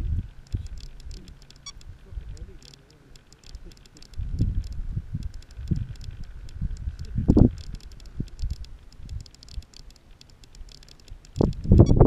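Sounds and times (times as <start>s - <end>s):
low rumbling noise: 0.0s - 12.0s
faint light clicks: 0.3s - 12.0s.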